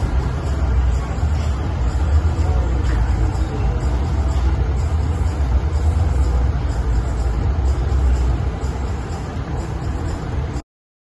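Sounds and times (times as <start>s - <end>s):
low rumble: 0.0s - 10.6s.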